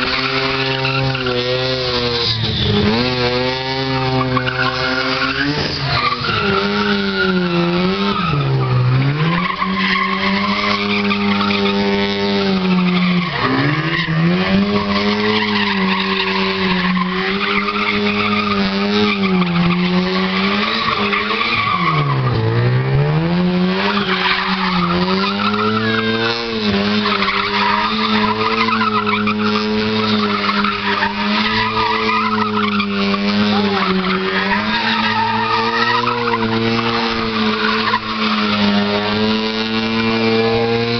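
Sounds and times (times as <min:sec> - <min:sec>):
tyres screeching: 0:00.0 - 0:23.0, 0:23.8 - 0:40.9
car engine revving high: 0:00.0 - 0:40.9.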